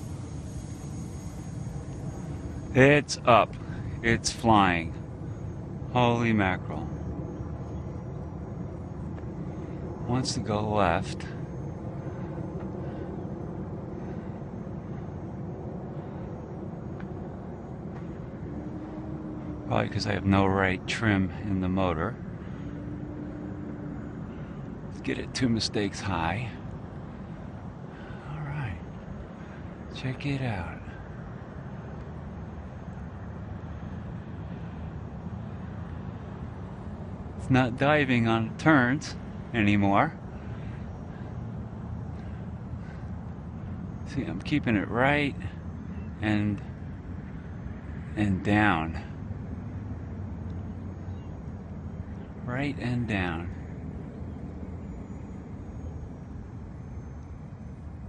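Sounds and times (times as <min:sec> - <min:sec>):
distant model plane motor: 0:00.0 - 0:02.7
distant electric motor drone: 0:00.0 - 0:58.0
low outdoor rumble: 0:00.0 - 0:58.0.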